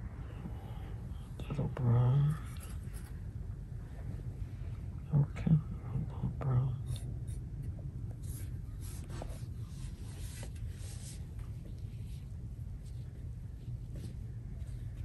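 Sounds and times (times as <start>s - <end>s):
low room hum: 0.0s - 15.0s
brush swishing on paper: 8.2s - 15.0s.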